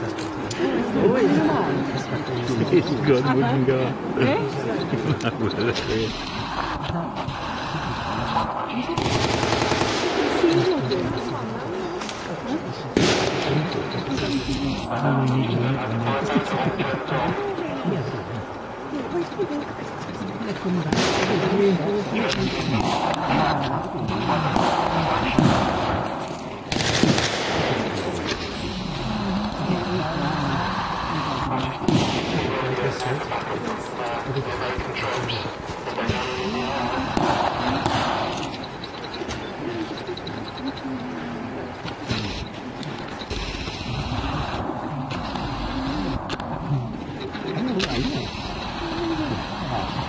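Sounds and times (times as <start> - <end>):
onlookers talking: 0.0 - 50.0
people's voices: 0.0 - 50.0
gunshot with echo: 9.0 - 10.6, 13.0 - 13.8, 20.9 - 21.6, 22.6 - 23.2, 24.3 - 28.4, 31.9 - 32.7, 37.2 - 38.4.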